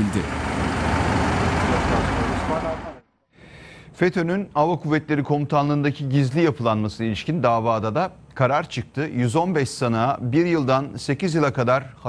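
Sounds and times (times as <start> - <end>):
bus engine idling: 0.0 - 3.0
street background: 0.0 - 3.4.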